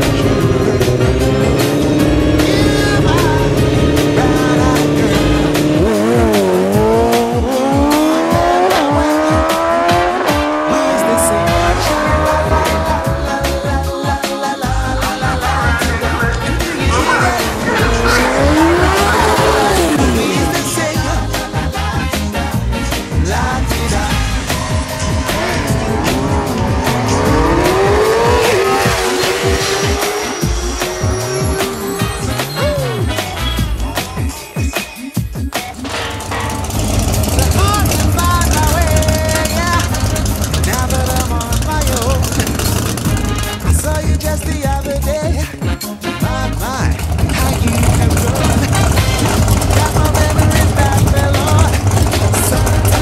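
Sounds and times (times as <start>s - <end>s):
motorcycle accelerating: 0.0s - 34.6s, 35.6s - 53.0s
race car engine rumbling: 0.0s - 34.6s, 35.6s - 53.0s
background music with beat: 0.0s - 53.0s
people's voices: 0.0s - 53.0s.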